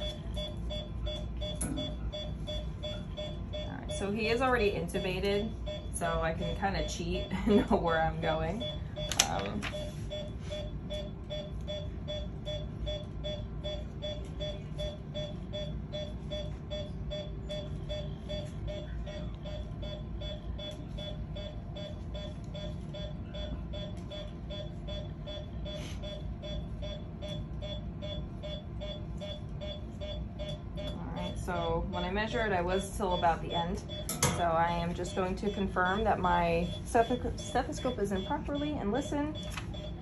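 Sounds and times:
patient monitor beeping: 0:00.0 - 0:40.0
steady low hum: 0:00.0 - 0:40.0.

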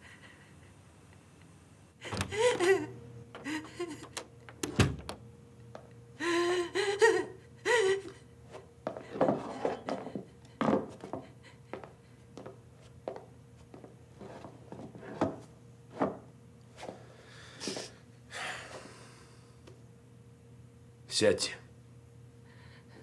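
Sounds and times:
woman crying in distress: 0:02.0 - 0:04.2, 0:06.2 - 0:08.3
heavy breathing: 0:16.8 - 0:19.6.

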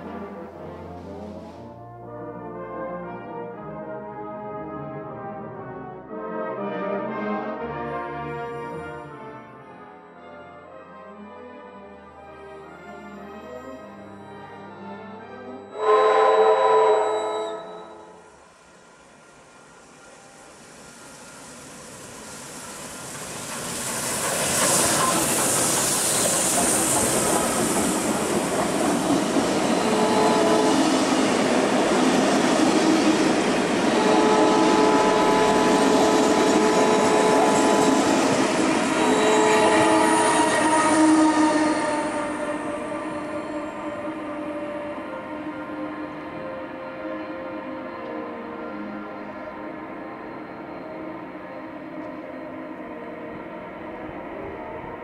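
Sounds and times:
steam locomotive passing: 0:00.0 - 0:04.1, 0:11.9 - 0:55.0
steam whistle: 0:15.7 - 0:18.5, 0:29.3 - 0:31.5, 0:32.7 - 0:52.2.

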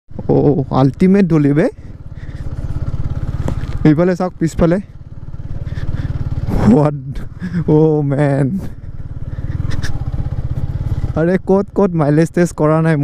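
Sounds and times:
motorcycle engine running: 0:00.1 - 0:13.0.

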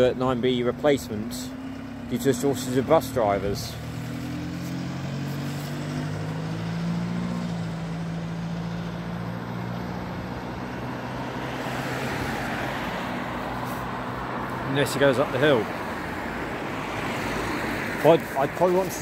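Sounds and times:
bus diesel engine droning: 0:00.0 - 0:11.1
passing car road noise: 0:00.0 - 0:19.0.

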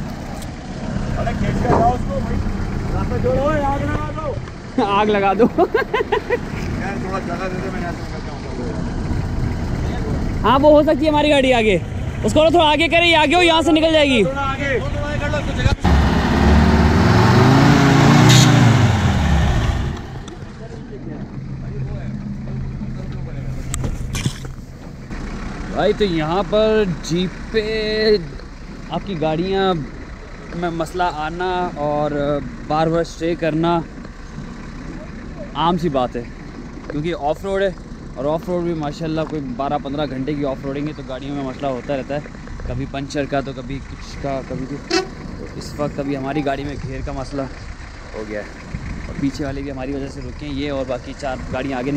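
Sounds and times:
engine running low: 0:00.0 - 0:51.9.

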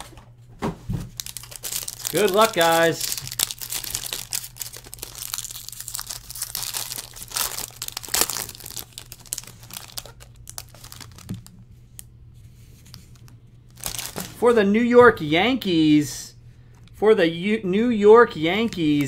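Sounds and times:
low electrical hum: 0:00.0 - 0:19.0
wrapping crinkling and tearing: 0:01.1 - 0:12.1, 0:12.7 - 0:14.4.

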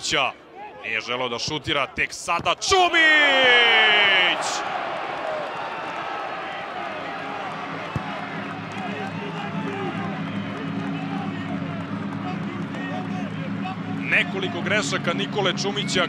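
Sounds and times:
crowd shouting: 0:03.0 - 0:14.0.

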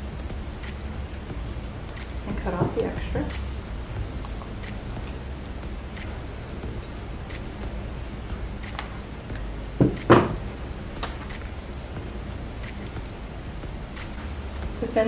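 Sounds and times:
room hum: 0:00.0 - 0:15.0.

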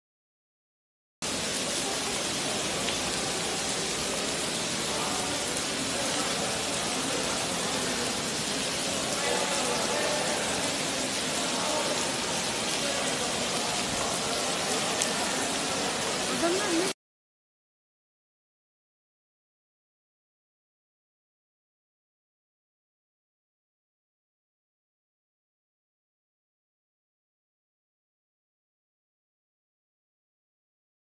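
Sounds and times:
rushing floodwater: 0:01.2 - 0:17.0
faint voices: 0:01.3 - 0:17.0.

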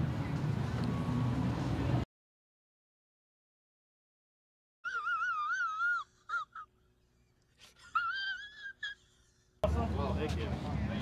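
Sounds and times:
man sobbing: 0:04.9 - 0:06.9, 0:07.6 - 0:09.6.

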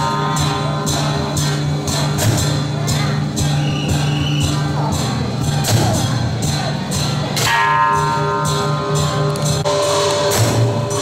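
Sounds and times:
percussion strikes: 0:00.0 - 0:11.0.

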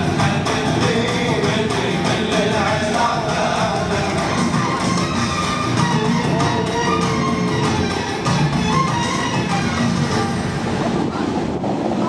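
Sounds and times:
fountain water jets rushing: 0:00.0 - 0:12.0.

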